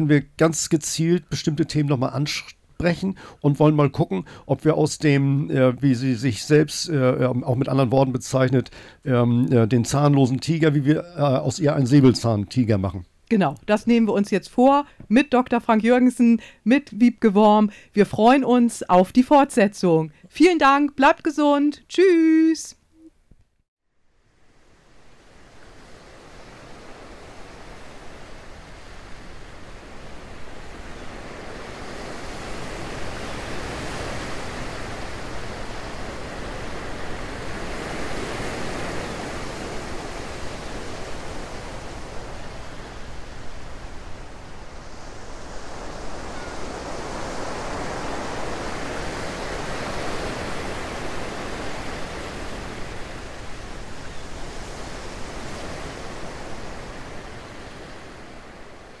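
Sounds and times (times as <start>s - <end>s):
rushing surging noise: 29.6s - 54.0s.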